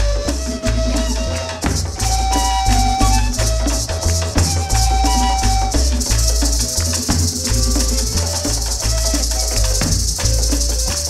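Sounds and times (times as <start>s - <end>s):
maracas shaking: 0.0s - 11.0s
pulsing hand drum beat: 0.0s - 11.0s
wavering flute melody: 0.0s - 11.0s.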